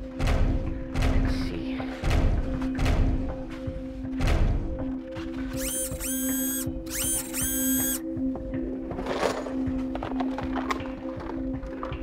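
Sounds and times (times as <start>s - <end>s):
robot servo whine: 5.6s - 8.0s.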